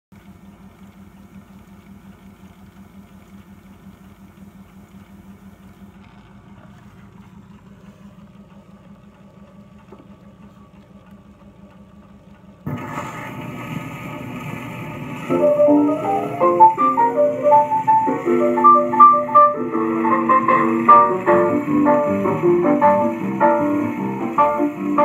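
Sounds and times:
low steady hum: 0:00.2 - 0:25.0
record surface noise: 0:04.8 - 0:25.0
jazz piano with rhythm section: 0:15.3 - 0:25.0.

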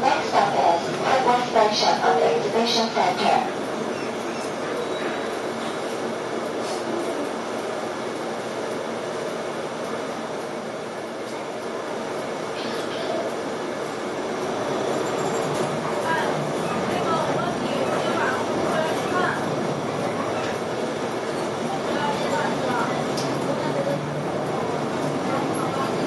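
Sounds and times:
bus engine and road noise: 0:02.8 - 0:26.0.

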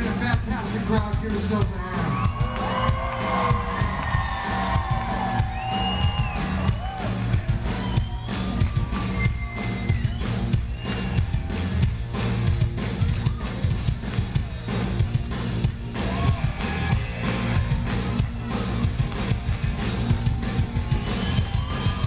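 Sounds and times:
driving drum beat: 0:00.0 - 0:22.0
punk rock band playing live: 0:00.0 - 0:22.0.

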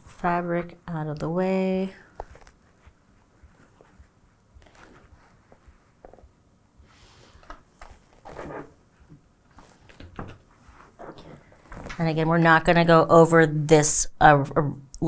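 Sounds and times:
fabric rustling: 0:02.1 - 0:06.3, 0:07.0 - 0:12.2.

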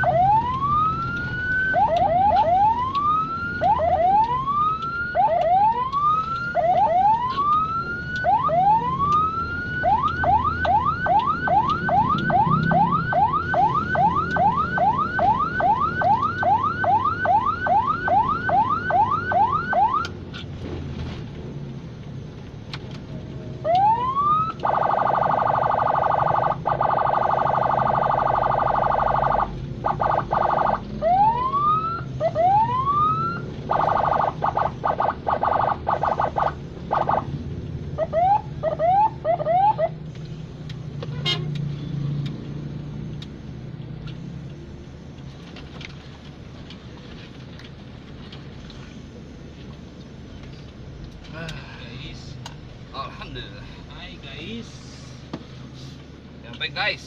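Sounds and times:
ambulance siren yelping: 0:00.0 - 0:20.1, 0:23.6 - 0:37.3, 0:38.0 - 0:40.0
engine and road noise: 0:00.0 - 0:57.0
harsh steady horn tone: 0:41.0 - 0:41.6.

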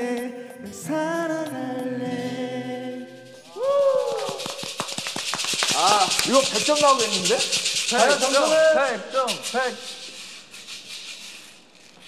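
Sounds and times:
soft shaker-like rattle: 0:03.0 - 0:12.0.

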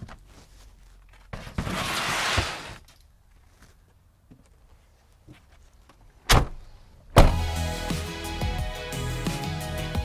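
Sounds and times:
van door slamming shut: 0:07.2 - 0:07.5
background music: 0:07.2 - 0:10.0.

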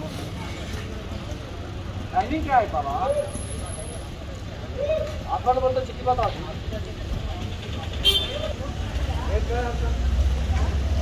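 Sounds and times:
faint voices: 0:00.0 - 0:11.0
low street rumble: 0:00.0 - 0:11.0.

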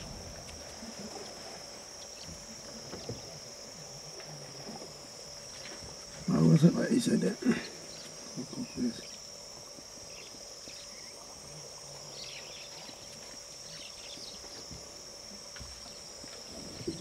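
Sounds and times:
soft low thumps: 0:00.0 - 0:01.4
high-pitched insect drone: 0:00.0 - 0:17.0.

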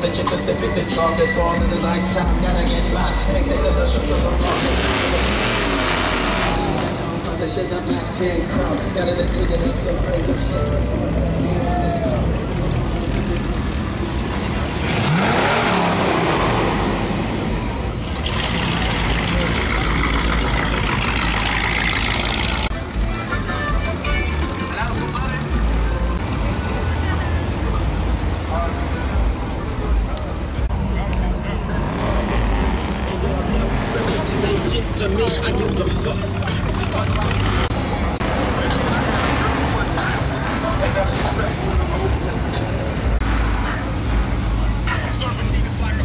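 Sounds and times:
music: 0:00.0 - 0:13.9, 0:22.6 - 0:30.7, 0:38.4 - 0:46.0
car engines rumbling: 0:00.0 - 0:46.0
people's voices: 0:00.0 - 0:46.0.

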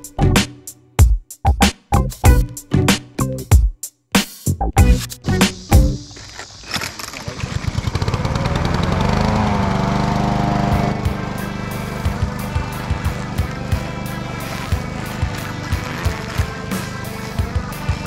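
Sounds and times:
beat music: 0:00.0 - 0:06.1, 0:10.7 - 0:18.0
small gasoline engine starting: 0:06.0 - 0:18.0.

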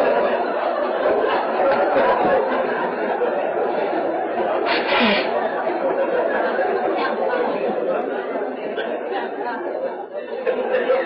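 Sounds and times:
crowd laughing: 0:00.0 - 0:11.0
many voices talking: 0:00.0 - 0:11.0.

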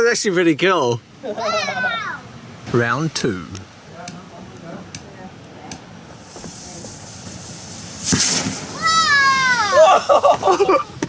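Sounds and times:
blowtorch hissing: 0:05.7 - 0:11.0
rocket fuel igniting whoosh: 0:06.0 - 0:10.5
high falling wailing cry: 0:08.7 - 0:10.8.

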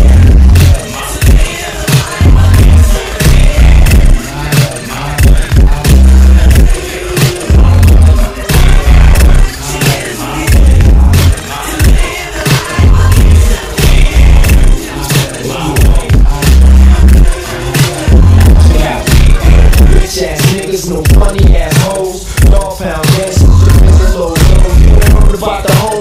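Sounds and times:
deep bass notes: 0:00.0 - 0:01.5, 0:02.2 - 0:09.5, 0:10.4 - 0:12.1, 0:12.8 - 0:14.9, 0:15.5 - 0:17.4, 0:18.1 - 0:21.8, 0:22.4 - 0:25.4
hip hop track: 0:00.0 - 0:26.0.

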